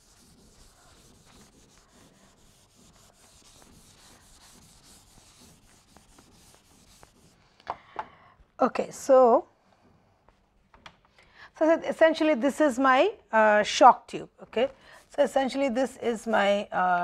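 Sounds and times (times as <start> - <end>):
duster scrubbing chalkboard: 0.0 - 7.4
woman's voice: 8.6 - 9.5, 11.6 - 17.0.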